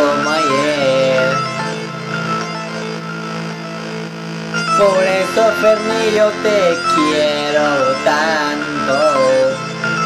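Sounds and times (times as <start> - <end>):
instrumental pop music: 0.0 - 10.0.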